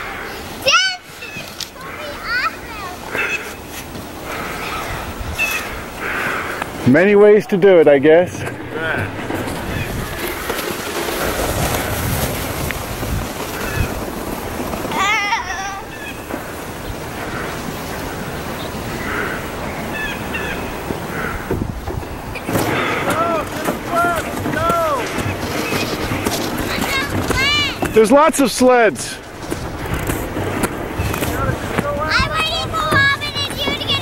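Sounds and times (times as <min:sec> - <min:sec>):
sled sliding on crusty snow: 0:00.0 - 0:34.0.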